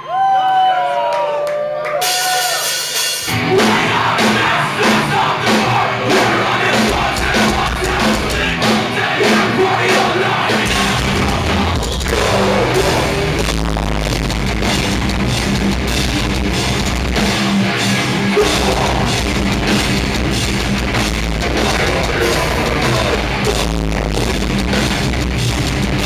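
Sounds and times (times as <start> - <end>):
drum kit: 2.0 - 26.0
distorted electric guitars: 2.1 - 26.0
bass guitar: 3.2 - 26.0.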